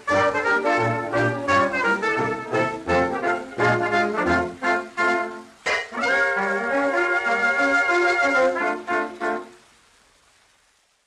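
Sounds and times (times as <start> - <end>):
dance band fox trot: 0.0 - 6.5
faint hiss: 0.0 - 11.0.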